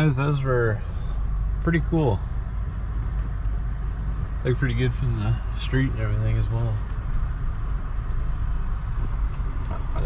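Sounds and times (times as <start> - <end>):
car cabin engine rumble: 0.0 - 10.0.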